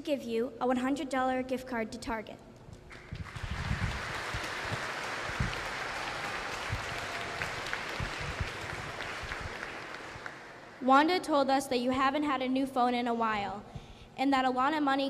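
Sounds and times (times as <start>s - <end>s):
audience applauding: 2.9s - 10.8s.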